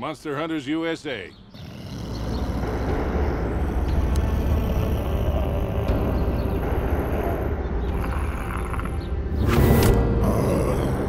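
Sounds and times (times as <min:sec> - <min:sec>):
heavy low rumble: 0:01.6 - 0:09.4.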